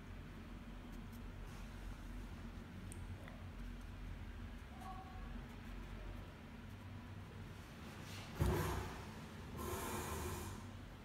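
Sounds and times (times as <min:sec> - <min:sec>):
person exhaling through nose: 0:09.6 - 0:10.7.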